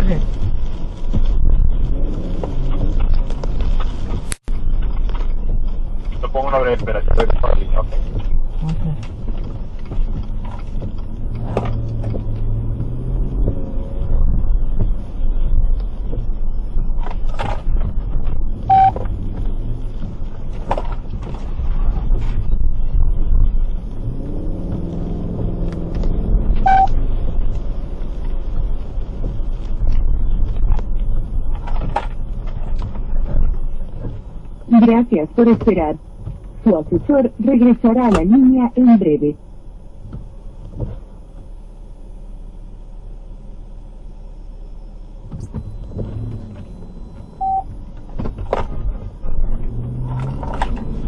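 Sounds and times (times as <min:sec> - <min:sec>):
car rumble inside cabin: 0:00.0 - 0:51.0
short beeps: 0:18.7 - 0:19.0, 0:26.6 - 0:27.0, 0:45.6 - 0:47.7.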